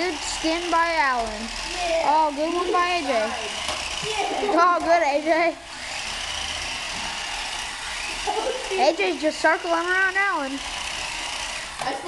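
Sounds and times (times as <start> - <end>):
toy car motors whirring: 0.0 - 12.0.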